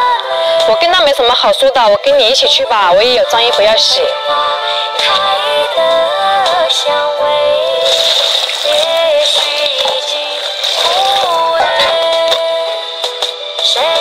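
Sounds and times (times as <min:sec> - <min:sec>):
high-pitched sung melody: 0:02.0 - 0:13.0.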